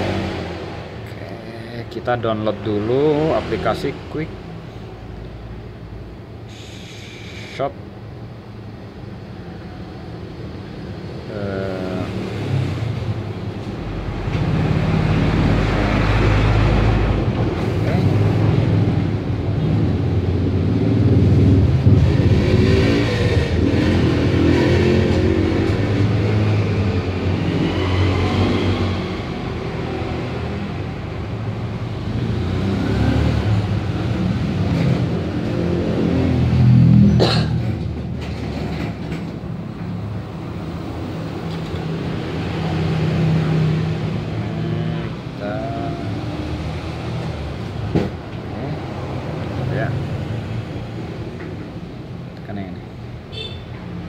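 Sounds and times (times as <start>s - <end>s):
vehicle engines passing: 0.0s - 54.0s.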